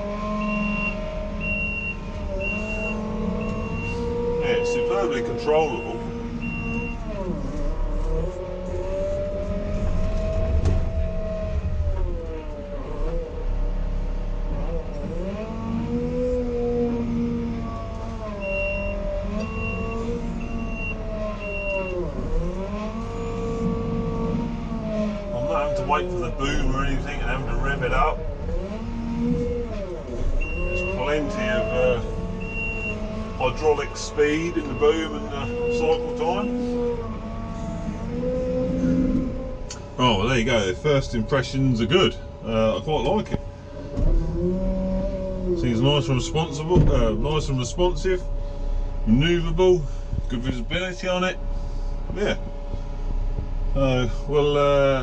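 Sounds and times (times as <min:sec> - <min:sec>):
diesel engine revving: 0:00.0 - 0:55.0
reversing beeper: 0:00.2 - 0:07.6, 0:17.6 - 0:24.4, 0:30.1 - 0:40.3.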